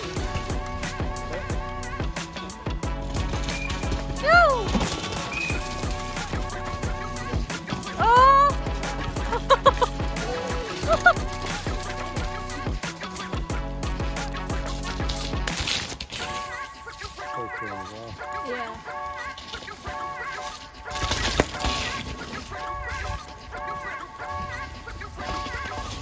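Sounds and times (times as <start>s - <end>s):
background music with beat: 0.0s - 26.0s.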